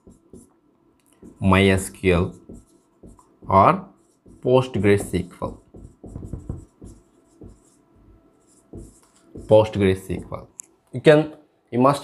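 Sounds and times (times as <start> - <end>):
marker writing on whiteboard: 0.0 - 10.4.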